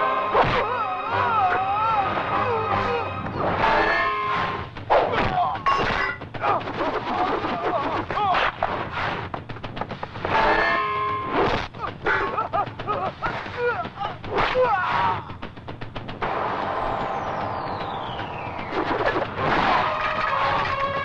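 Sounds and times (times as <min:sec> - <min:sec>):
men shouting: 0:00.6 - 0:03.2.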